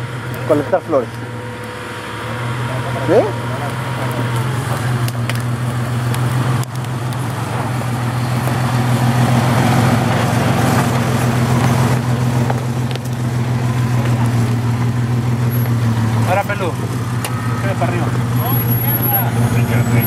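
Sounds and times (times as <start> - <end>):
engine running at low revs: 0.0 - 20.0.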